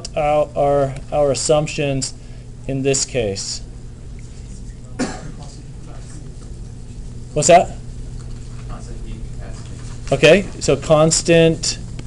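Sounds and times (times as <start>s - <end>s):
person coughing: 5.0s - 5.5s.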